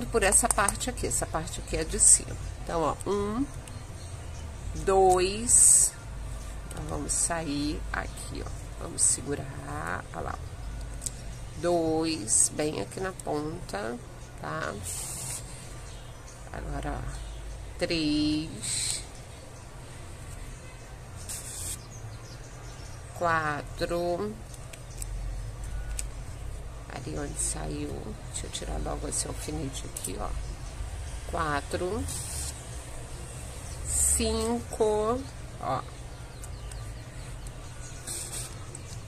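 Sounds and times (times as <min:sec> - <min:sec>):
thread hissing through ribbon: 0:14.8 - 0:15.6, 0:21.3 - 0:21.8, 0:32.0 - 0:32.6, 0:38.0 - 0:38.6.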